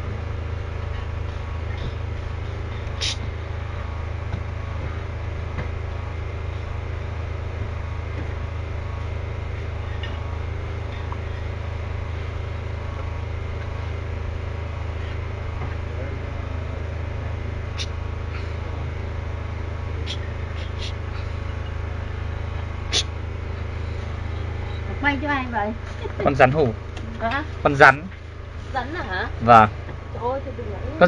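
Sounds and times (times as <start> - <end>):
constant hiss: 0.0 - 31.0
steady low hum: 0.0 - 31.0.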